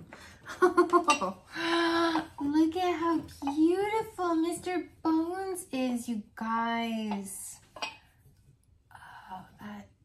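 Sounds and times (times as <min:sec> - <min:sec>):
ceramic parts clinking: 0:01.0 - 0:01.4, 0:07.1 - 0:08.1.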